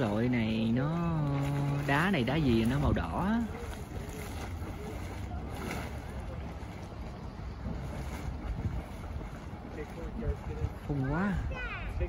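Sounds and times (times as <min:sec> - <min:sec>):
mud pot boiling and spattering: 0:00.0 - 0:12.0
wind on microphone: 0:00.0 - 0:12.0.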